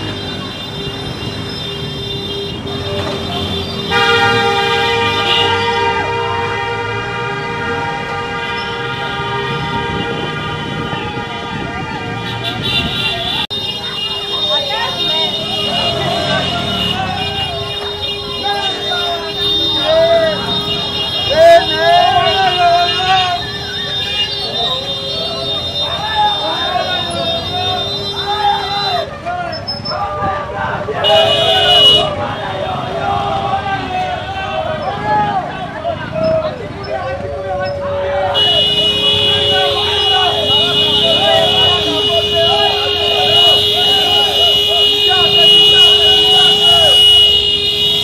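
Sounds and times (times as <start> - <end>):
crowd shouting: 0.0 - 48.0
horns blaring: 0.0 - 48.0
people's voices: 0.0 - 48.0.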